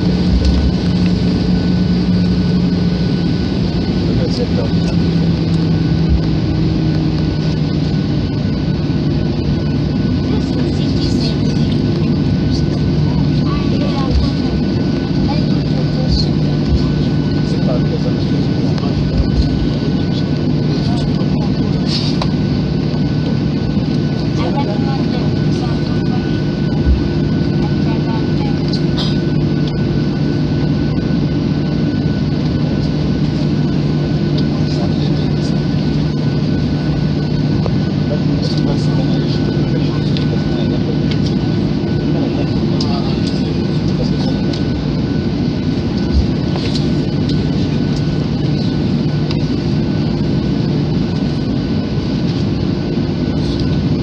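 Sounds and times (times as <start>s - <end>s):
airliner engines droning: 0.0s - 54.0s.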